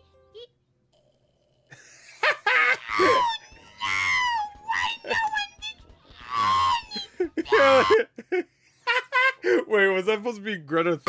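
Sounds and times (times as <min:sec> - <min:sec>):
cartoon voice wailing and crying: 0:02.6 - 0:08.1.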